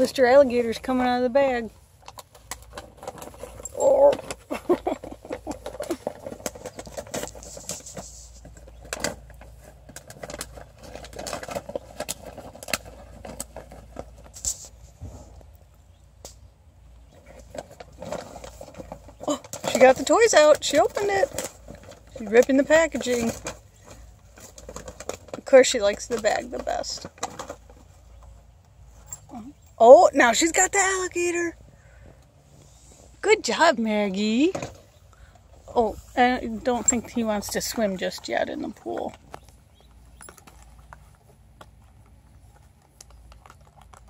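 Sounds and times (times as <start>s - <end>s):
puppy rustling gift bag: 2.1s - 15.3s.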